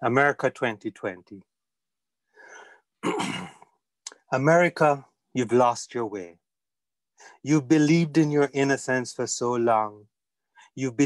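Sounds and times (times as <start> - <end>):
man breathing softly: 2.2 - 2.9, 7.1 - 7.4
man clearing throat: 3.0 - 3.7.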